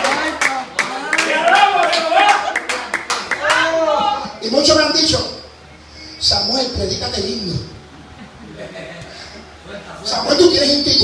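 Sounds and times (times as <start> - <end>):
hands clapping: 0.0 - 3.7.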